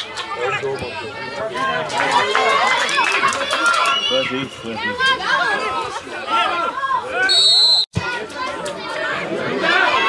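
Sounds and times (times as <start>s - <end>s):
voices shouting over one another: 0.5s - 7.3s, 8.0s - 10.0s.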